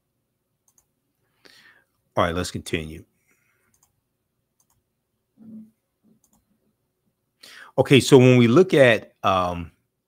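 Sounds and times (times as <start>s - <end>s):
faint clicks: 0.6s - 0.9s, 3.7s - 4.0s, 4.6s - 4.8s, 6.2s - 6.5s
man speaking: 2.2s - 3.1s, 7.6s - 9.8s.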